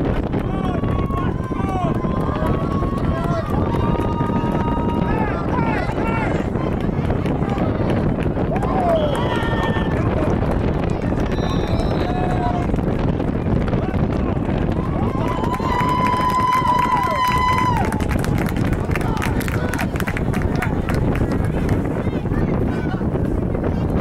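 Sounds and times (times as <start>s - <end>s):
spectators shouting and cheering: 0.0s - 24.0s
wind rumble on microphone: 0.0s - 24.0s.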